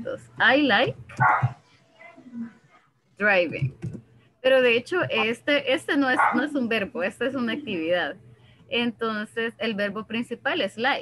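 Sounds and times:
dog barking: 1.2 - 1.6, 6.2 - 6.4.

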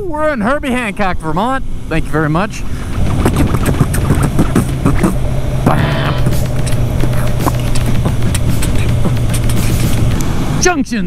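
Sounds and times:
motorcycle engine cruising: 0.0 - 11.0
wind rushing over microphone: 0.7 - 10.8.

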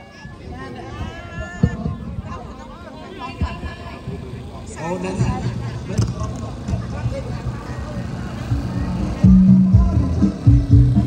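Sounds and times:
faint voices: 0.0 - 11.0
generator humming: 3.4 - 11.0.

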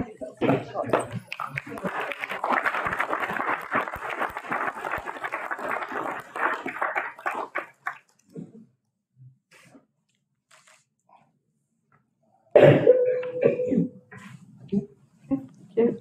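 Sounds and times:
people applauding: 0.9 - 8.2.

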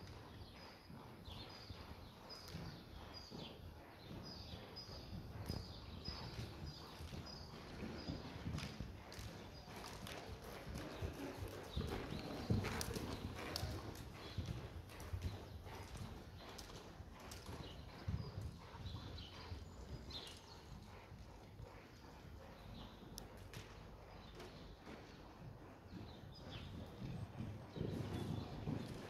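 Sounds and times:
horse hooves thudding on soft ground: 2.3 - 29.0.

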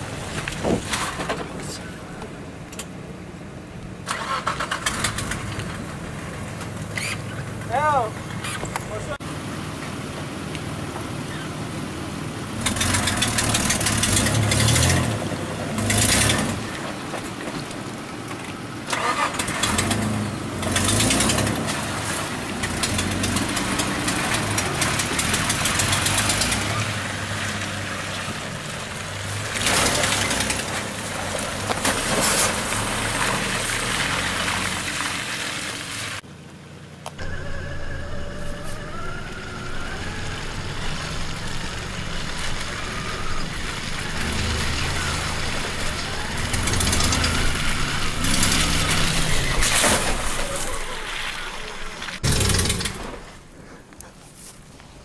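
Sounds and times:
suv engine revving: 10.7 - 16.9, 18.8 - 36.2, 37.2 - 53.3.

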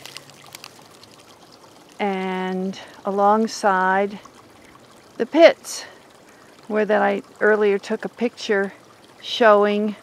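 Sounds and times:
creek water trickling: 0.0 - 10.0.

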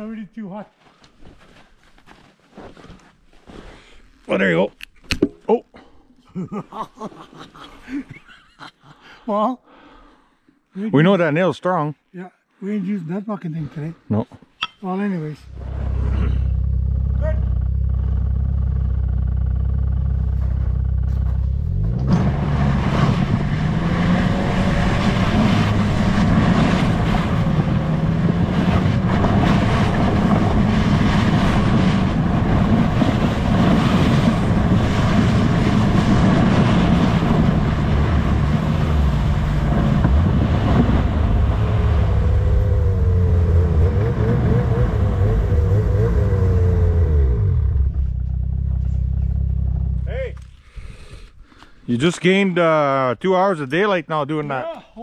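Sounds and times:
snowmobile engine: 15.5 - 50.4.

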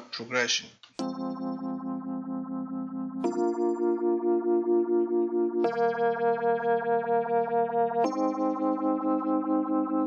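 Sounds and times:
pulsing synth organ chord: 1.0 - 10.0.

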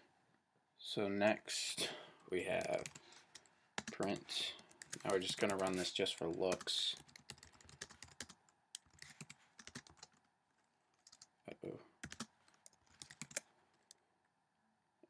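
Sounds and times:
keyboard typing clicks: 12.0 - 14.0.

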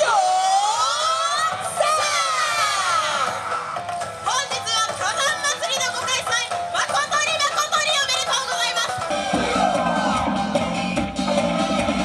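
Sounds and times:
dancers shouting in unison: 0.0 - 3.5
dance music: 0.0 - 12.0.

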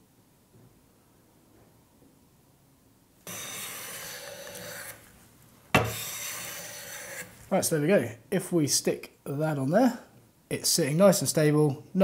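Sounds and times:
hand plane shaving wood: 3.3 - 5.0, 5.8 - 7.4
sharp knock: 5.8 - 6.0.

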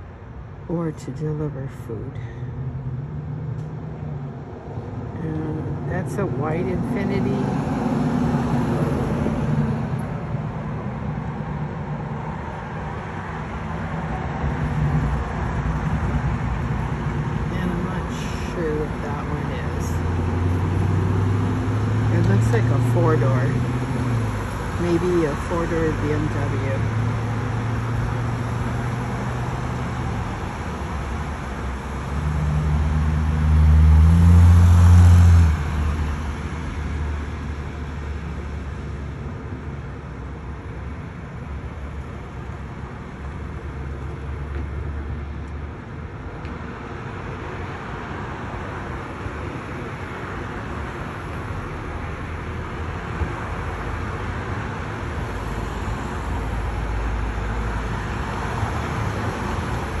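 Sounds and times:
passing cars and road noise: 0.0 - 60.0
vehicle engine rumble: 0.0 - 60.0.

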